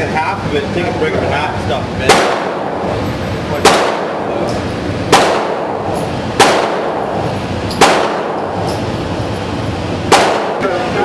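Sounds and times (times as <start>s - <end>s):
gunshots echoing indoors: 2.0s - 9.4s, 10.0s - 11.0s.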